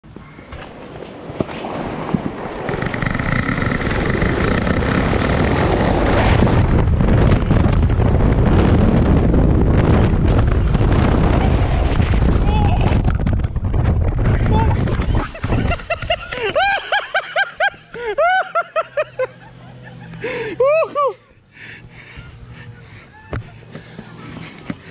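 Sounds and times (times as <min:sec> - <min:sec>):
raft sliding rushing rumble: 0:00.5 - 0:17.1
person laughing: 0:14.8 - 0:24.0.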